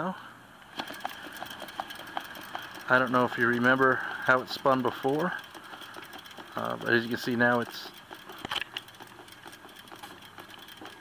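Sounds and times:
bicycle wheel spinning with ticking: 0.7 - 11.0.

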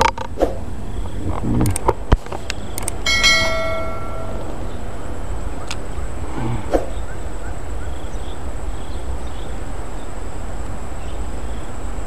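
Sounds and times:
steady background noise: 0.0 - 12.0
notification bell ding: 3.1 - 4.5.

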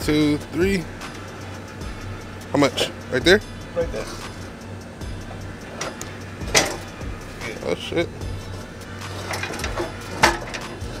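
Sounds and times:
metallic clicks and knocks: 5.7 - 7.0, 9.1 - 11.0.

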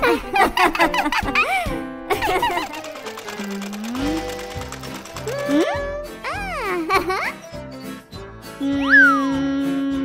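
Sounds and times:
light children's music: 0.0 - 10.0
cartoon sewing machine ticking: 2.2 - 5.7.

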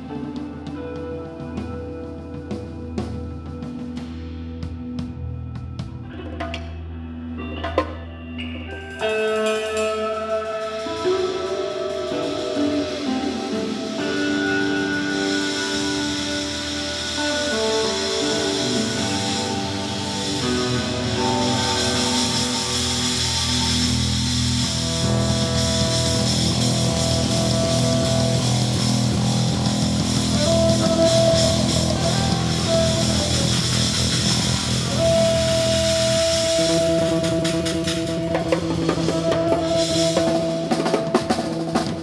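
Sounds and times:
bass guitar: 0.0 - 42.0
blues-rock band playing: 0.0 - 42.0
drums: 0.0 - 42.0
electric guitar: 0.0 - 42.0.

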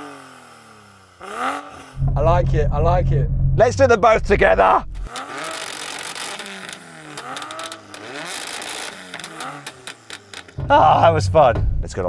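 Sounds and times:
car engines revving: 0.0 - 12.0.

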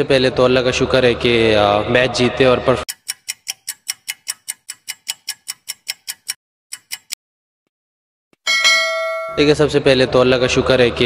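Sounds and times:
rapid clock ticks: 2.8 - 7.2
bell-like chime: 8.5 - 9.6.

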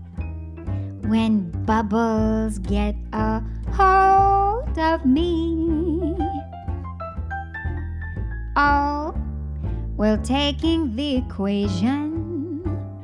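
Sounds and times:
bass: 0.0 - 13.0
piano: 0.0 - 13.0
woman singing jazz: 1.0 - 6.4, 8.6 - 9.2, 10.0 - 12.9.

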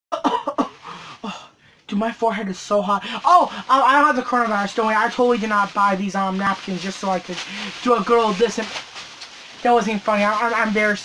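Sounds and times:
man coughing: 0.1 - 1.5.

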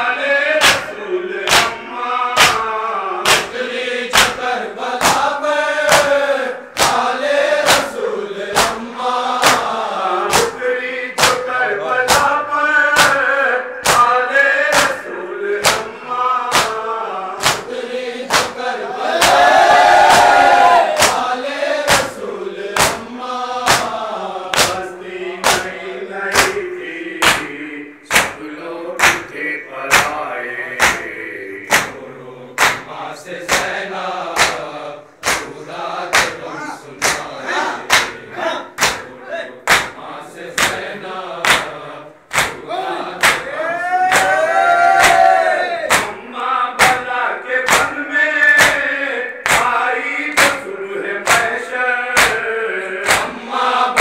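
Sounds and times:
men chanting: 0.0 - 54.0
hands slapping chests: 0.6 - 1.8, 2.4 - 8.8, 9.4 - 9.7, 10.3 - 10.6, 11.2 - 11.5, 12.1 - 12.4, 13.0 - 15.0, 15.6 - 15.9, 16.5 - 16.8, 17.4 - 22.2, 22.8 - 24.8, 25.4 - 26.6, 27.2 - 28.4, 29.0 - 29.3, 29.9 - 30.2, 30.8 - 32.0, 32.6 - 38.2, 38.8 - 40.0, 40.6 - 40.8, 41.4 - 42.6, 43.2 - 43.5, 44.1 - 44.4, 45.0 - 46.2, 46.8 - 47.0, 47.7 - 48.0, 48.6 - 49.8, 50.4 - 50.6, 51.2 - 51.6, 52.2 - 53.3
crowd crying out: 43.5 - 45.9.

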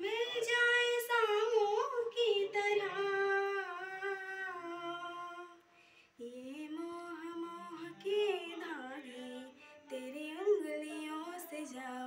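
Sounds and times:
woman singing unaccompanied: 0.0 - 5.6, 6.2 - 12.0.

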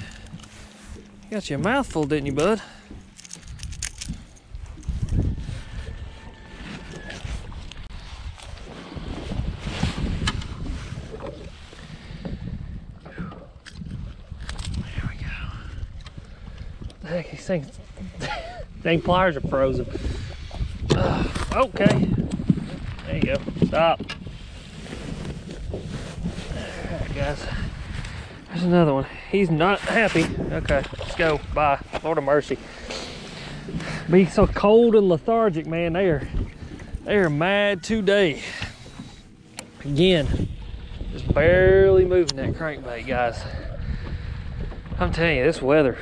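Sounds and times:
wind rumbling on microphone: 0.0 - 46.0.

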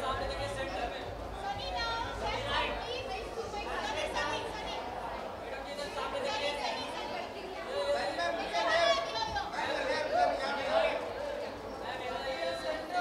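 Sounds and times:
people talking over one another: 0.0 - 13.0.

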